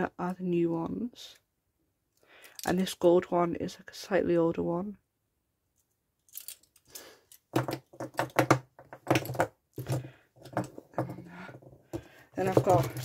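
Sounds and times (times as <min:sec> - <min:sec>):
pens clicking and clattering: 0:06.4 - 0:13.0.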